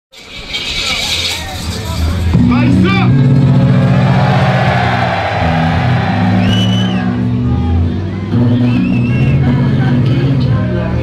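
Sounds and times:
bass-heavy hip hop track: 0:01.4 - 0:11.0
crowd cheering and shouting: 0:03.3 - 0:08.6.

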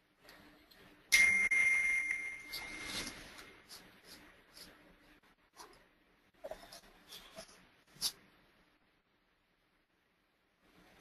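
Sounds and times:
bright ding: 0:01.1 - 0:03.0.

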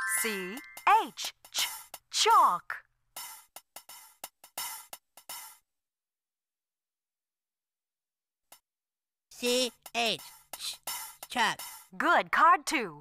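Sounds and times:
drum kit beat: 0:03.2 - 0:05.6, 0:09.4 - 0:11.9.

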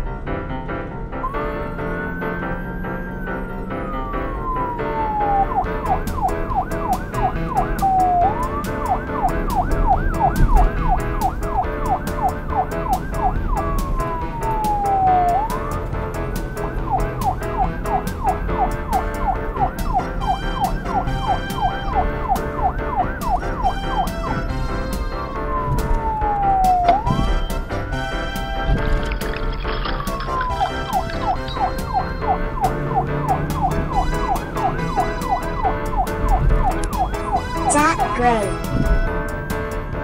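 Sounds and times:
police siren wailing and yelping: 0:01.2 - 0:39.9
background music with steady beat: 0:03.8 - 0:29.2, 0:29.8 - 0:40.0.

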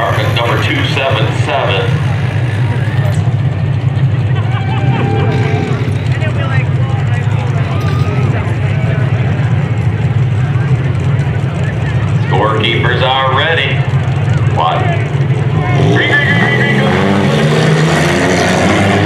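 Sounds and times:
faint indistinct voices: 0:00.0 - 0:16.9
race car engines droning: 0:00.0 - 0:19.0.

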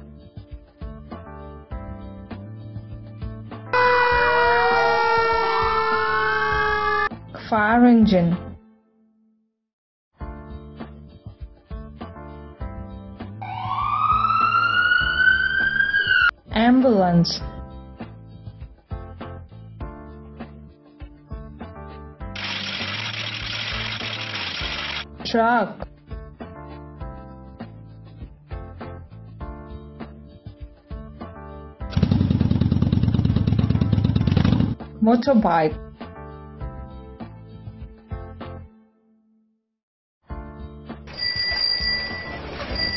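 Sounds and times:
light background music: 0:00.0 - 0:03.8, 0:05.9 - 0:09.0, 0:10.2 - 0:32.0, 0:33.5 - 0:39.0
cartoon siren wail: 0:03.8 - 0:07.1, 0:13.4 - 0:16.3
motorcycle engine running: 0:31.9 - 0:34.8.

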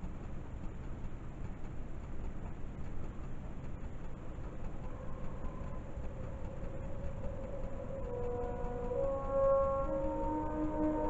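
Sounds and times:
low rumbling tv noise: 0:00.0 - 0:11.0
faint held musical tone: 0:03.4 - 0:11.0
sustained film trailer music: 0:04.4 - 0:11.0.

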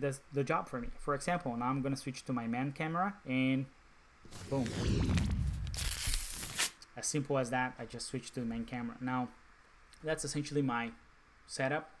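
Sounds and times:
low rumble: 0:04.3 - 0:06.5
rushing sweep sound effect: 0:04.3 - 0:06.6.

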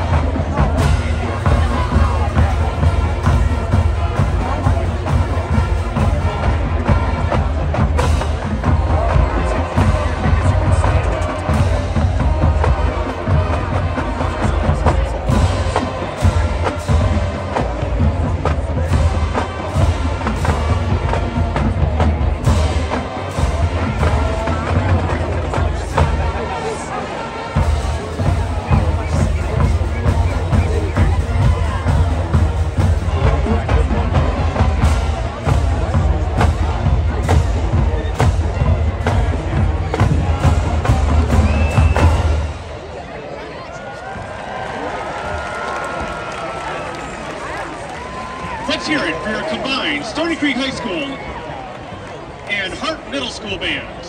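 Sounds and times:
heavy bass drum: 0:00.0 - 0:26.4, 0:27.6 - 0:42.8
crowd noise: 0:00.0 - 0:54.0
marching band playing: 0:00.0 - 0:54.0.

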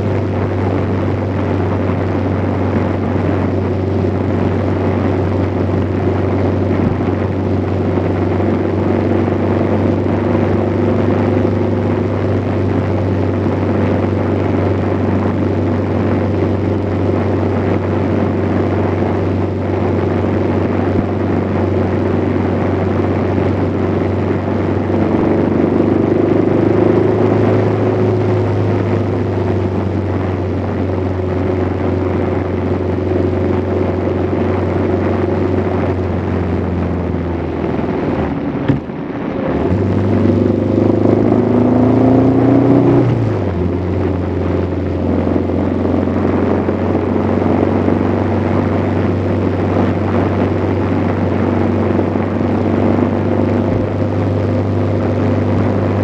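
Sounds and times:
engine drone: 0:00.0 - 0:56.0
road and wind noise: 0:00.0 - 0:56.0.

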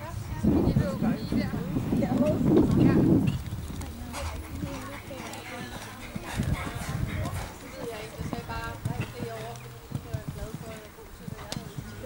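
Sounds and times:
horse hoofbeats on sand: 0:00.8 - 0:12.0.

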